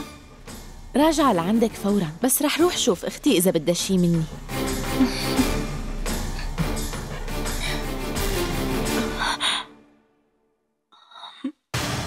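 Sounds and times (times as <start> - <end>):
drama music: 0.0 - 10.0
woman sighing: 4.9 - 8.0.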